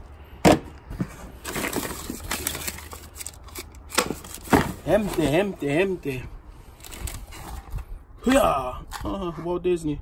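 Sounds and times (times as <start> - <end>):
cardboard and paper rustling: 0.9 - 6.0, 6.7 - 7.9.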